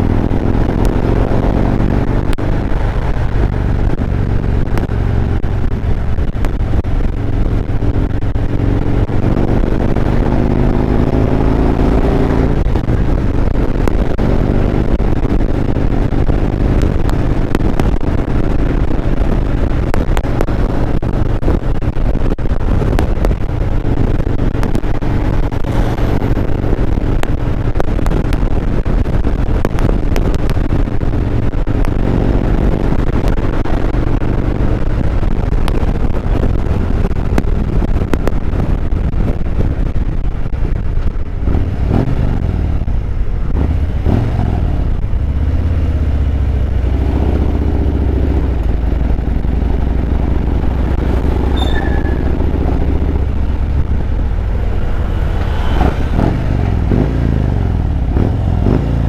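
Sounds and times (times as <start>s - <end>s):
motorcycle engine running: 0.0s - 59.0s
wind and road noise: 0.0s - 59.0s.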